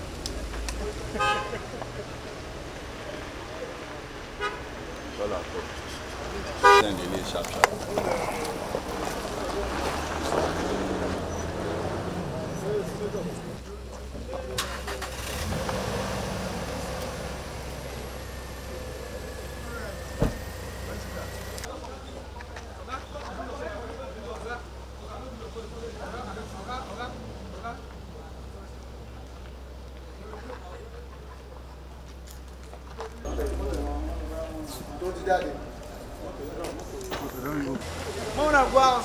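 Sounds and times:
indistinct voices: 0:00.0 - 0:31.9, 0:33.0 - 0:39.0
car horn toot: 0:01.2 - 0:01.6, 0:04.4 - 0:04.7, 0:06.6 - 0:06.9
heavy thump: 0:20.1 - 0:20.7.

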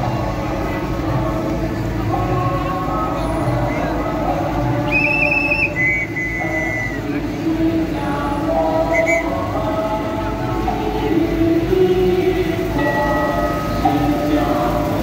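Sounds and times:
street crowd noise: 0:00.0 - 0:15.0
shrill whistle: 0:04.9 - 0:07.0, 0:08.9 - 0:09.4.

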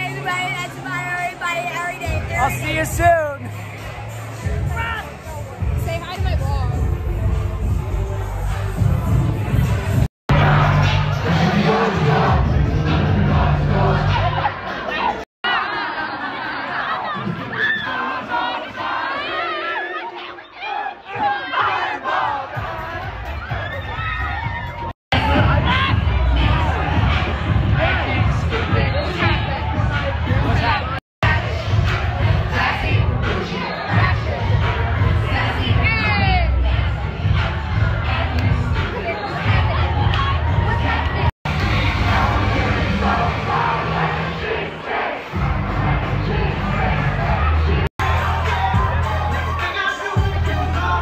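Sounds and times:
bass-heavy dance music: 0:00.0 - 0:15.2, 0:22.5 - 0:51.0
crowd shouting and cheering: 0:00.0 - 0:51.0.

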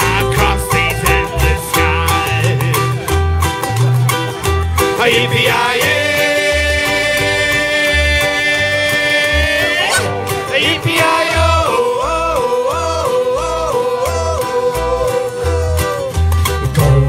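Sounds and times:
ukulele group strumming chords: 0:00.0 - 0:17.0.

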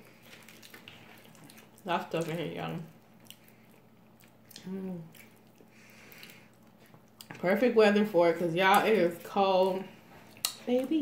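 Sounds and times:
woman's voice: 0:01.9 - 0:02.9, 0:07.3 - 0:11.0
wet mouth sounds of eating: 0:03.1 - 0:07.4.

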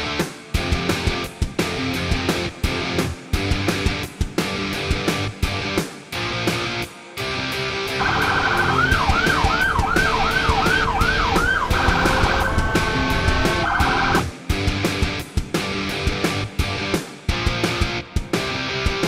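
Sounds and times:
rock music with steady beat: 0:00.0 - 0:19.0
vehicle siren yelping: 0:08.0 - 0:14.3.

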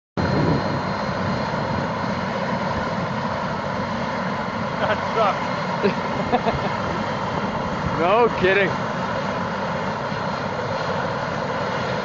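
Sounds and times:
helicopter rotor chop: 0:00.2 - 0:12.0
helicopter turbine whine: 0:00.2 - 0:12.0.

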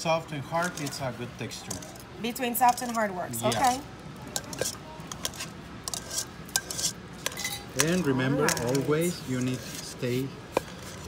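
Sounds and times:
whisk clinking against metal bowl: 0:02.6 - 0:10.0.

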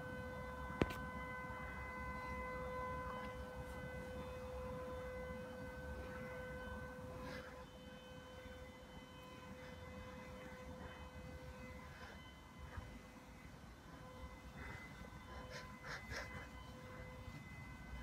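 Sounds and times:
steady pitched hum: 0:00.0 - 0:18.0
hand brushing faux fur: 0:09.3 - 0:18.0.

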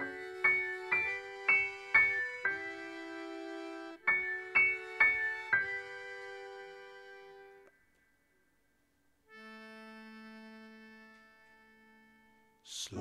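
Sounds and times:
electric keyboard chords: 0:00.0 - 0:07.7, 0:09.3 - 0:12.6
accordion: 0:00.0 - 0:08.0, 0:09.2 - 0:13.0.

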